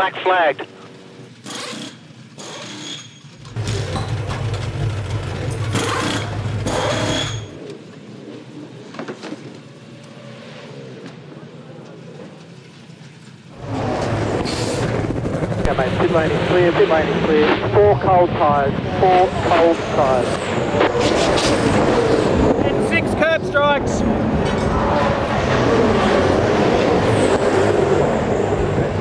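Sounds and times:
race car engine: 0.0 - 29.0
pneumatic wheel guns whining: 1.4 - 4.5, 5.7 - 7.6.

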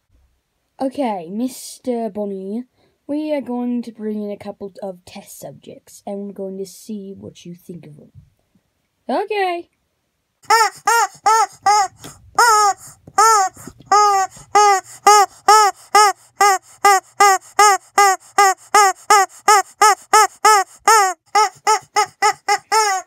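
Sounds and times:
rubber chicken toy squawking: 10.4 - 23.0.

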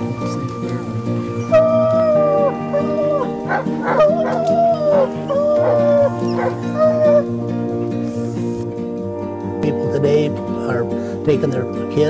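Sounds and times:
background music: 0.0 - 12.0
hounds baying: 1.3 - 7.6
dogs barking sharply: 3.1 - 7.2.

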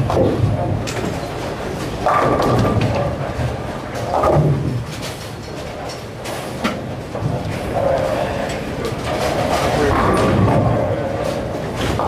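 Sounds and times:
bowling balls and pins rumbling: 0.0 - 12.0.

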